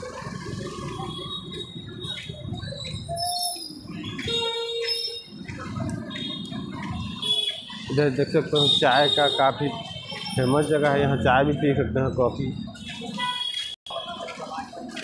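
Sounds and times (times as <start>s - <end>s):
motorbike and car engines: 0.0s - 8.7s
crowd voices: 0.0s - 15.0s.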